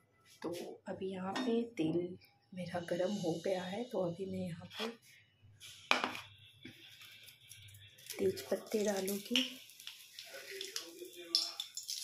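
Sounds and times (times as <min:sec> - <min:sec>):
leaves sizzling in hot oil: 0:07.0 - 0:12.0
sharp crackles in oil: 0:07.0 - 0:12.0.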